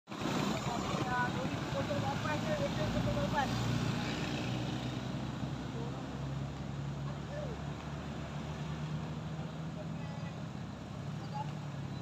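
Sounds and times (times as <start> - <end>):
vehicle engine idling: 0.1 - 3.5
roadside traffic noise: 0.1 - 12.0.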